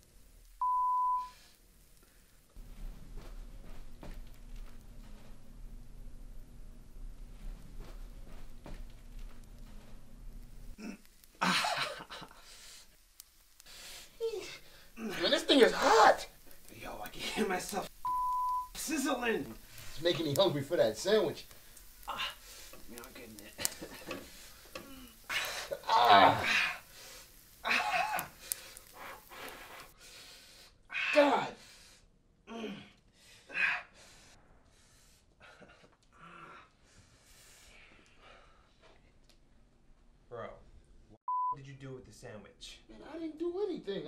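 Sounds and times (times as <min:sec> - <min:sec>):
man groaning in pain: 0:10.8 - 0:11.8, 0:22.1 - 0:22.4, 0:24.8 - 0:26.8, 0:27.6 - 0:28.3, 0:32.5 - 0:33.8
strained breathing: 0:12.3 - 0:13.0, 0:13.6 - 0:15.0, 0:21.5 - 0:22.9, 0:23.7 - 0:39.2
man crying out in strain: 0:24.9 - 0:26.8, 0:27.6 - 0:28.4.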